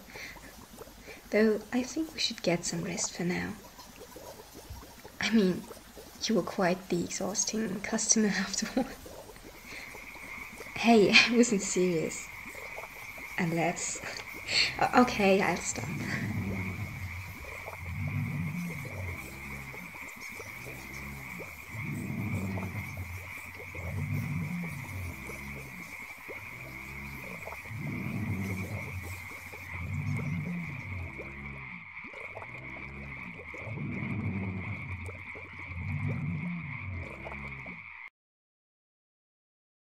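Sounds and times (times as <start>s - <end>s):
low calls: 0.0s - 37.8s.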